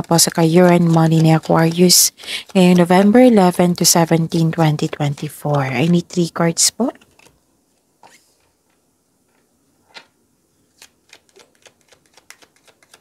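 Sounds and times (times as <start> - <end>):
deck of cards shuffled by hand: 0.2 - 6.2, 6.9 - 7.4, 10.7 - 13.0.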